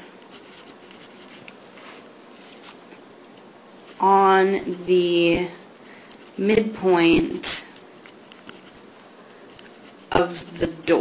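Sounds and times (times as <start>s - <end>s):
pen scratching on paper: 0.3s - 1.5s, 8.1s - 8.9s, 9.6s - 10.9s.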